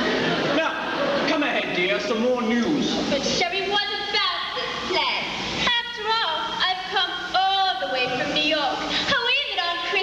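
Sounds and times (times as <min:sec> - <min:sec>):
actors speaking on stage: 0:00.0 - 0:10.0.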